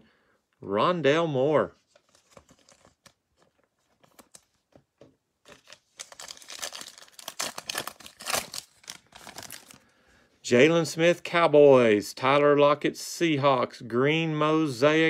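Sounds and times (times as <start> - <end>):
wrapper crinkling and tearing: 5.4 - 9.9.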